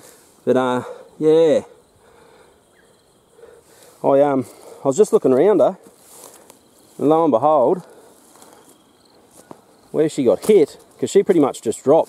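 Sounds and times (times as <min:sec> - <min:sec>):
insects humming: 0:00.0 - 0:12.0.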